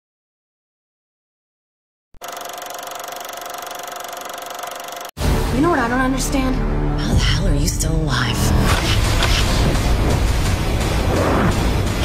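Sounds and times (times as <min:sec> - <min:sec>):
film projector running: 0:02.2 - 0:05.2.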